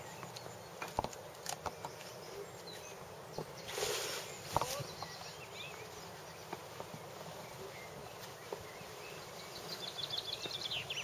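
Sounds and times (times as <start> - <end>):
steady low hiss: 0.0 - 11.0
faint bird chirps: 1.6 - 11.0.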